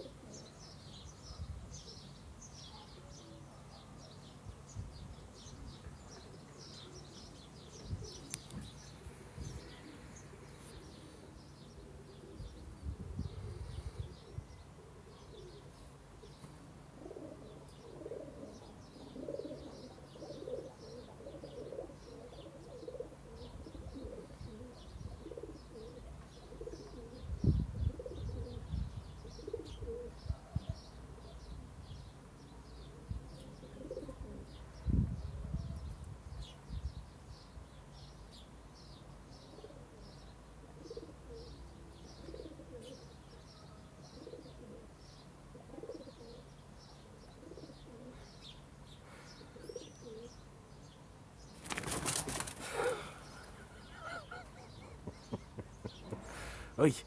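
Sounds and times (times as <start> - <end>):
pigeons cooing: 0.0 - 2.0, 5.4 - 32.0, 32.8 - 36.4, 39.3 - 56.8
small birds chirping: 0.0 - 57.0.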